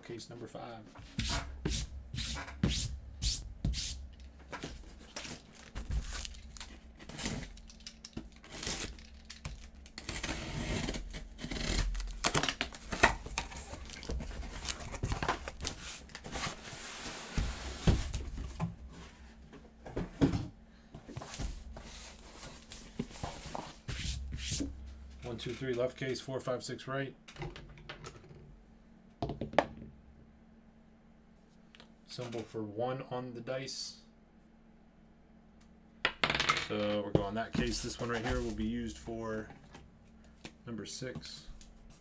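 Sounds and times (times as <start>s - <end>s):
cardboard tearing and crinkling: 5.2s - 16.6s.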